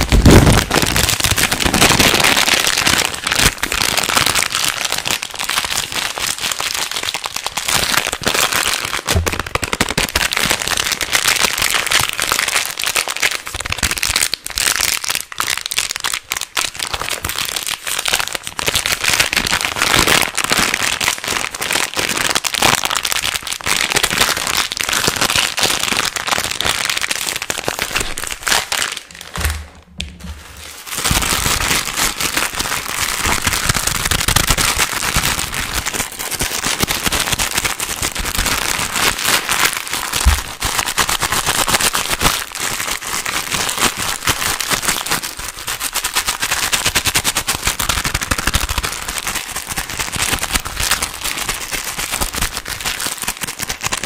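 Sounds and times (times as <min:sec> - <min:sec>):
plastic wrapper crinkling: 0:00.0 - 0:54.0.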